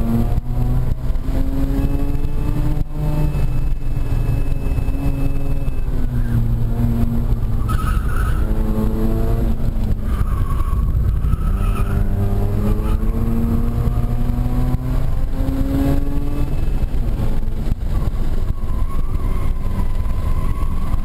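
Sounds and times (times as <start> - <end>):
rotary engine revving: 0.0 - 21.0.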